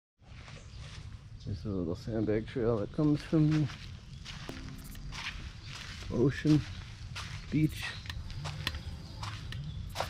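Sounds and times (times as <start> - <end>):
footsteps on stone path: 2.7 - 10.0.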